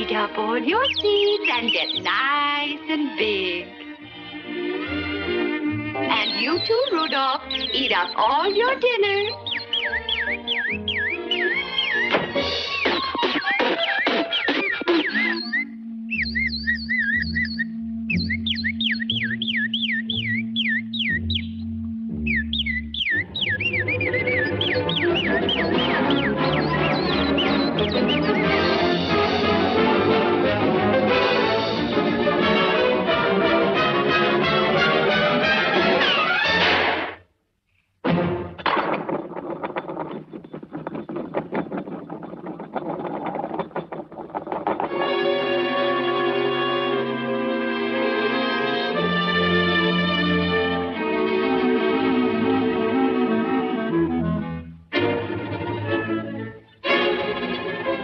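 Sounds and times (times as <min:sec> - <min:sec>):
whistle-like orchestral melody: 0:00.7 - 0:02.4, 0:04.4 - 0:36.7, 0:45.2 - 0:58.0
low bass notes: 0:15.7 - 0:31.0
full orchestra playing: 0:24.5 - 0:36.9, 0:45.1 - 0:58.0
disc rattling on a floor: 0:38.6 - 0:45.0.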